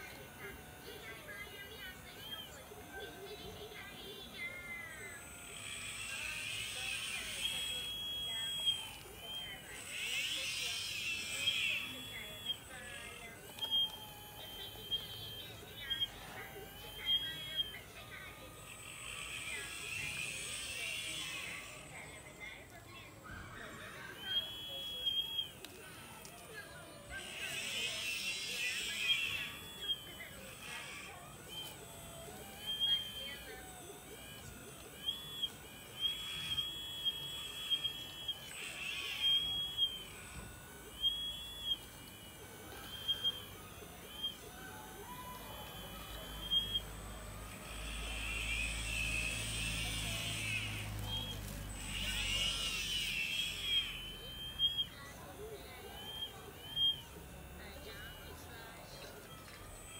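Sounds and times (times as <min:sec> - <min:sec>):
model motors whining: 0:00.0 - 0:59.9.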